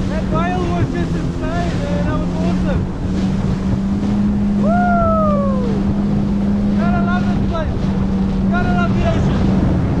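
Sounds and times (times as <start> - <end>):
jet ski engine drone: 0.0 - 10.0
rush of wind and water: 0.0 - 10.0.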